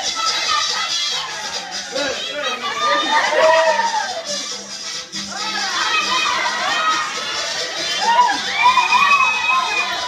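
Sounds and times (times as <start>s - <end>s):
crowd shouting and cheering: 0.0s - 10.0s
high voices calling out: 0.0s - 10.0s.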